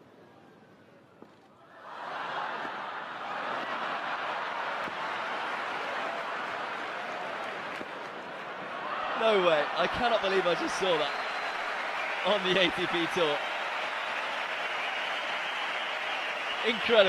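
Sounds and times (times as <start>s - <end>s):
crowd applauding and cheering: 1.8s - 17.0s.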